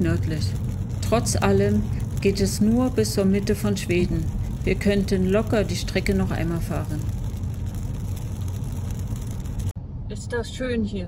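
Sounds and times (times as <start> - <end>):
engine and tyre rumble: 0.0 - 10.8
road and wind noise: 0.0 - 11.0.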